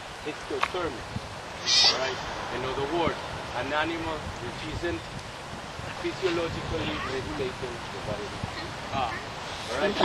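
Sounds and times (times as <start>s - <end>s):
sea lion bleating calls: 1.6s - 2.1s.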